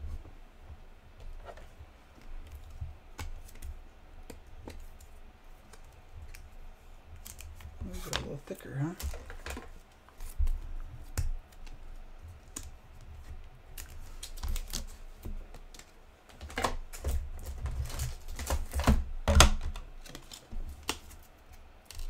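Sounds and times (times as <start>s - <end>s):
hands handling card and plastic: 1.2s - 22.0s.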